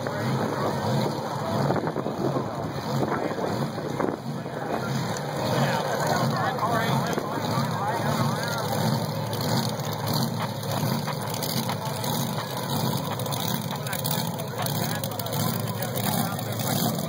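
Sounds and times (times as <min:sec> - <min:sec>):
drag cars idling: 0:00.0 - 0:17.0
voices talking: 0:00.0 - 0:17.0.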